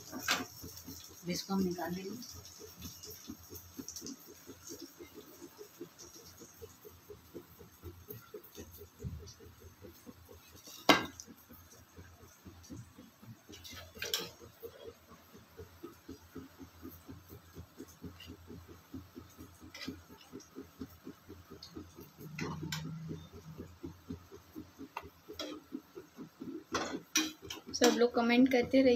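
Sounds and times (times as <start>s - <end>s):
food frying in hot oil: 0.0s - 28.9s
small clatter: 0.0s - 28.9s.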